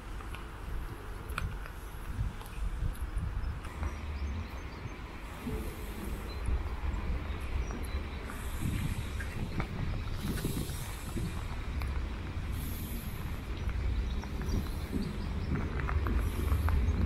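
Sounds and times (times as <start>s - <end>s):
wind buffeting microphone: 0.0s - 17.0s
distant steam locomotive: 3.6s - 17.0s
faint steam hissing: 3.7s - 17.0s.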